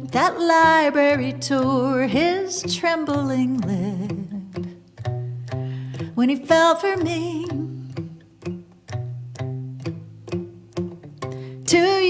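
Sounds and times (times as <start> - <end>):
person singing: 0.0 - 4.7, 6.0 - 8.0, 11.5 - 12.0
acoustic guitar strumming: 0.0 - 12.0.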